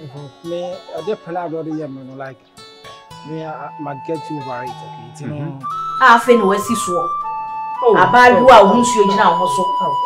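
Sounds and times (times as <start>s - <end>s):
person talking: 0.0s - 2.4s, 3.3s - 7.0s, 7.8s - 9.5s
music with long held notes: 0.0s - 10.0s.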